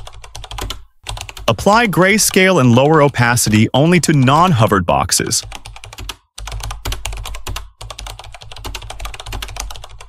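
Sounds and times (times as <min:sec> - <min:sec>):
rapid keyboard typing: 0:00.0 - 0:10.0.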